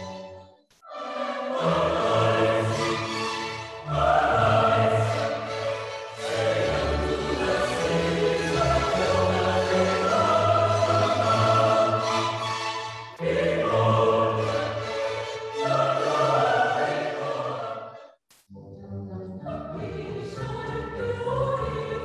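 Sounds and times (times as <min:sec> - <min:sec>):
choir singing held chords: 0:00.8 - 0:18.2.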